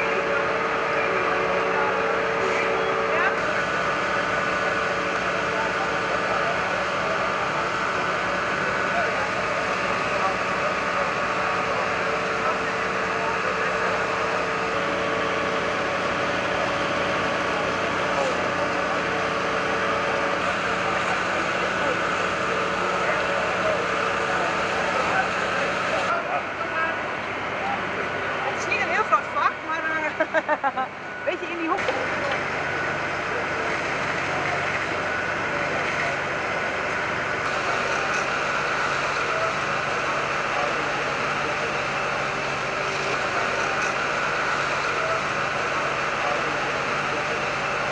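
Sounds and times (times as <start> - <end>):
faint voices: 0.0 - 47.9
fire engine pumps humming: 0.0 - 47.9
hoses spraying water: 37.4 - 47.9.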